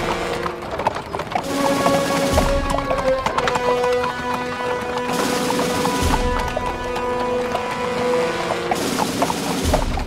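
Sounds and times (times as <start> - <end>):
horse hooves clip-clopping: 0.0 - 10.0.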